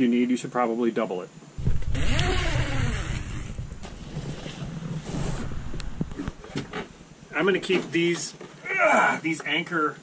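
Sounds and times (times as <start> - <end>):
low handling rumble: 1.6 - 7.3
microphone rubbing rustle: 1.6 - 7.7.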